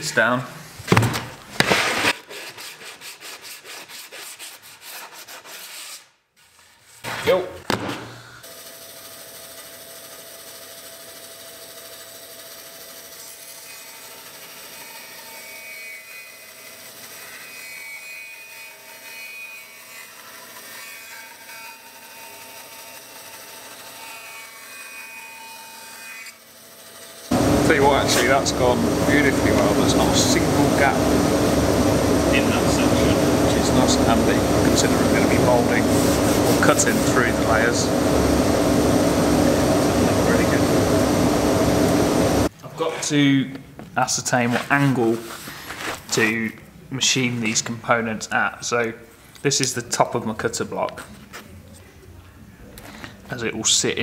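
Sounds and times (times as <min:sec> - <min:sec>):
sanding block rubbing wood: 0:01.8 - 0:06.1, 0:27.3 - 0:40.8
bandsaw cutting wood: 0:08.4 - 0:42.5.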